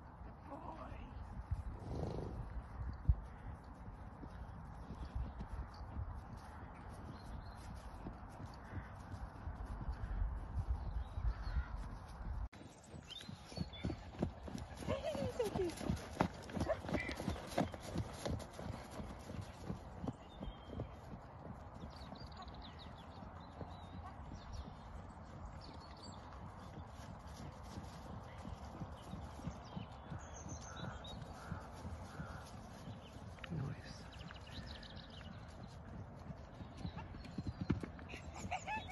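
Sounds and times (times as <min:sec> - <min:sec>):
horse hoofbeats on grass: 0:00.0 - 0:38.9.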